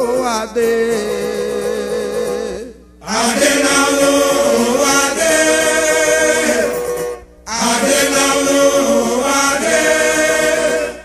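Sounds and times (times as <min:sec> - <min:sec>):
choir singing harmonised chords: 0:03.0 - 0:11.0.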